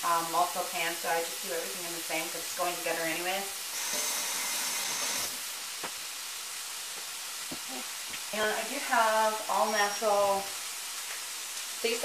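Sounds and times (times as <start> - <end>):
chicken sizzling in a frying pan: 0.0 - 12.0
kitchen tap running: 2.2 - 5.6.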